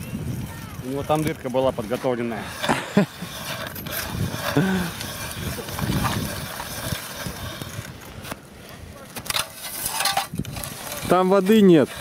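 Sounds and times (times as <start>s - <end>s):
ice auger grinding into ice: 0.0s - 12.0s.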